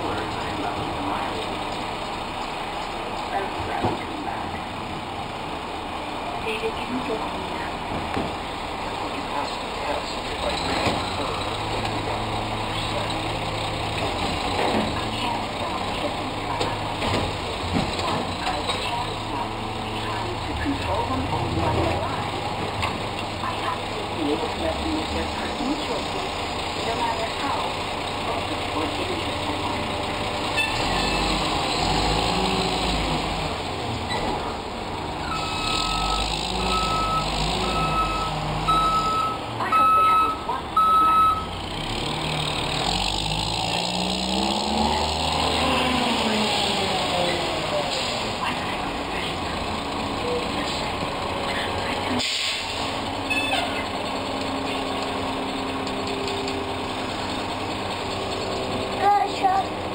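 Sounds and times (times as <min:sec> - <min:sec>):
garbage truck diesel engine: 0:00.0 - 0:59.9
reversing beeper beeps: 0:35.2 - 0:41.5.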